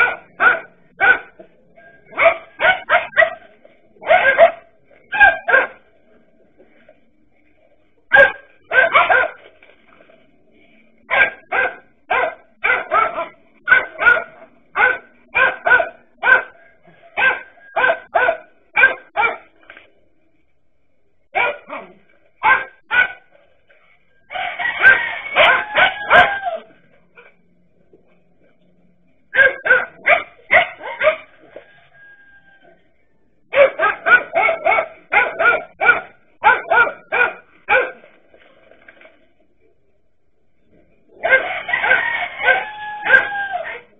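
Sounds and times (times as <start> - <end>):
dogs barking: 0.0 - 5.9, 8.1 - 9.4, 11.0 - 19.5, 21.3 - 23.3, 24.3 - 27.4, 29.3 - 31.6, 33.5 - 38.1, 41.1 - 43.9.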